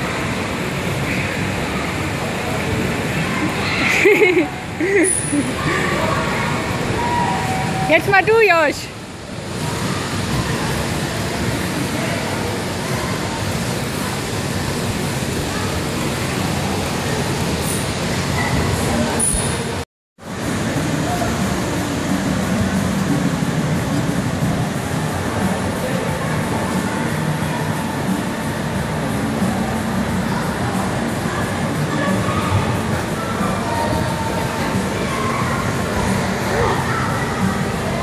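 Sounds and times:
constant wash of noise: 0:00.0 - 0:38.0
echoing background chatter: 0:00.0 - 0:38.0
children's voices: 0:30.0 - 0:38.0.

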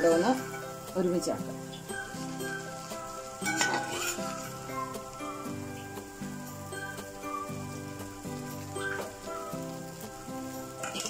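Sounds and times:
background music with held notes: 0:00.0 - 0:11.0
metal spatula stirring in pan: 0:01.6 - 0:11.0
spatula scraping pan: 0:01.7 - 0:05.2, 0:10.7 - 0:11.0.

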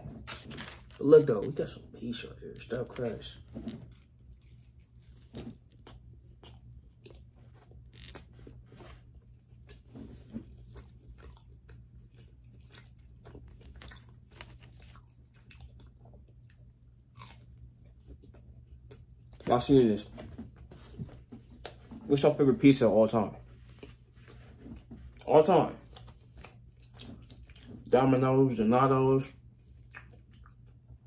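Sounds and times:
pizza crunching while chewed: 0:00.0 - 0:19.8, 0:23.6 - 0:28.8, 0:29.4 - 0:31.0.

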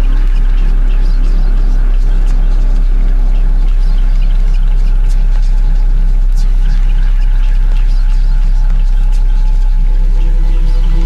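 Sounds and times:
electronic bass music: 0:00.0 - 0:11.0.

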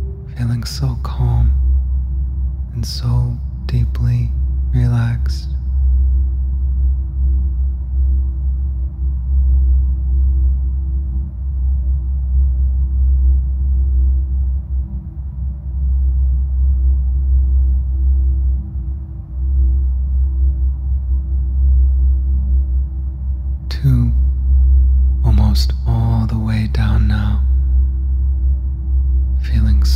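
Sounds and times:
low ambient drone: 0:00.0 - 0:29.9
thin sustained tone: 0:00.0 - 0:29.9.

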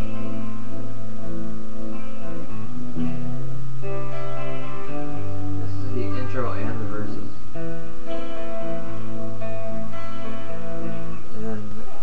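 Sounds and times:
electric guitar picking chords: 0:00.0 - 0:12.0.

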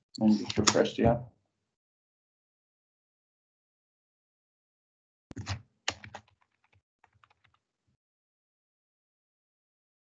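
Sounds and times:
typing on a computer keyboard: 0:05.3 - 0:07.6.

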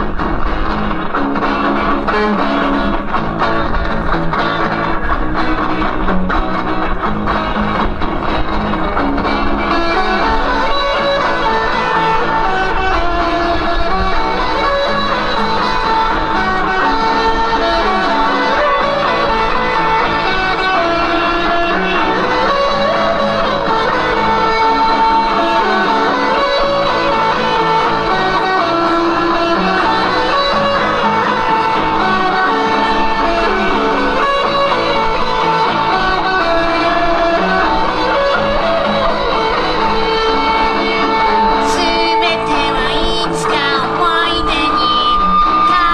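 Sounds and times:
electric guitar: 0:00.0 - 0:45.9
live rock band playing: 0:00.0 - 0:45.9.

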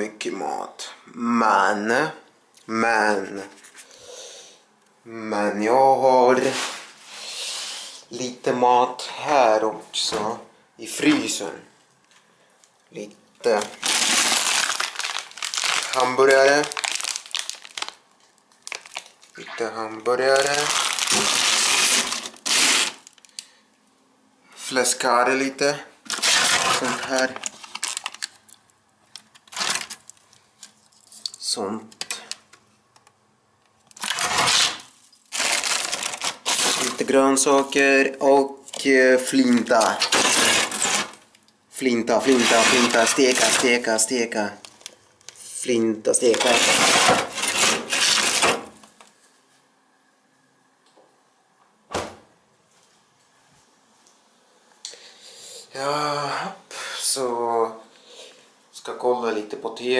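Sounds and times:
plastic-wrapped frozen food rustling: 0:13.4 - 0:19.4, 0:20.1 - 0:23.3, 0:26.0 - 0:28.6, 0:29.4 - 0:30.3, 0:34.0 - 0:37.8, 0:39.3 - 0:41.2, 0:42.2 - 0:43.9, 0:46.2 - 0:48.9
packaging crinkling: 0:13.4 - 0:23.5, 0:26.0 - 0:31.4, 0:33.8 - 0:37.8, 0:39.3 - 0:41.4, 0:42.2 - 0:43.9, 0:46.2 - 0:49.0.

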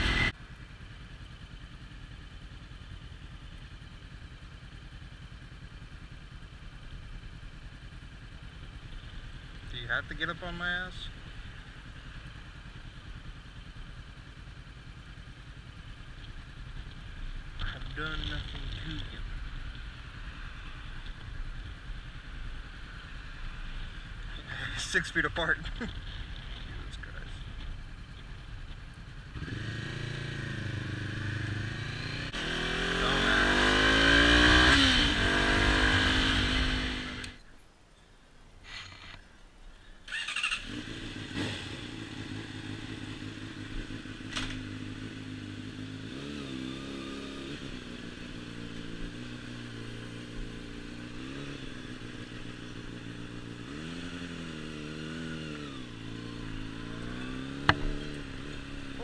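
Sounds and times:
motorcycle accelerating hard: 0:00.0 - 0:00.4, 0:29.3 - 0:37.4, 0:40.1 - 0:59.0
motorcycle running at low speed: 0:00.0 - 0:37.5, 0:39.8 - 0:59.0.

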